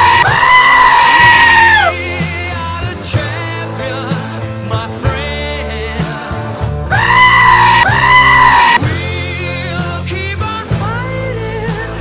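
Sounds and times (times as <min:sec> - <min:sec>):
goat screaming: 0:00.0 - 0:02.0, 0:06.9 - 0:08.8
rock band music: 0:00.0 - 0:12.0.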